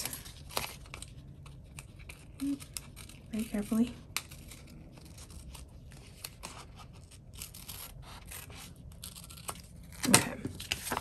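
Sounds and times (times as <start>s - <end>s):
small scissors cutting paper: 0.0s - 11.0s
paper rustling: 4.2s - 11.0s.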